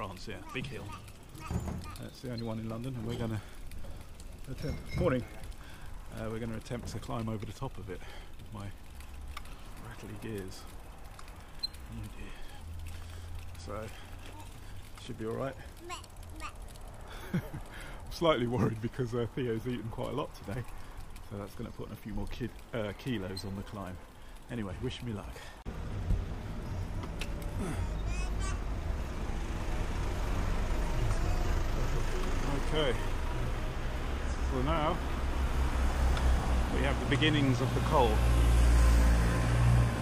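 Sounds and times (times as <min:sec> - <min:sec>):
rattling gear clicks: 0:00.0 - 0:25.4
bicycle rolling rumble: 0:00.0 - 0:40.0
road traffic: 0:00.0 - 0:40.0
van engine: 0:25.6 - 0:40.0.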